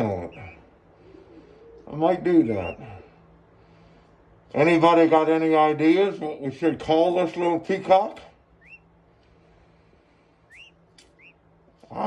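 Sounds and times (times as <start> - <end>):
chick peeping: 0.0 - 2.8, 8.6 - 8.9, 10.5 - 11.4.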